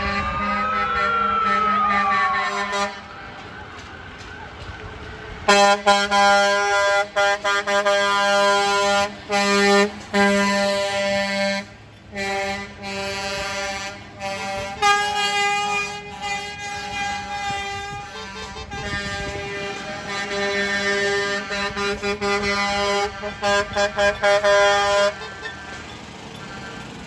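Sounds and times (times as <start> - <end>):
tow truck air horns honking: 0.0 - 3.2, 5.4 - 27.0.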